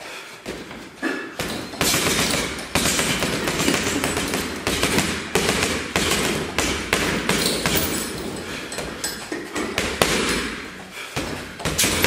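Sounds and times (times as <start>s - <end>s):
gloves thudding on punch bag: 0.4s - 9.0s, 9.6s - 12.0s.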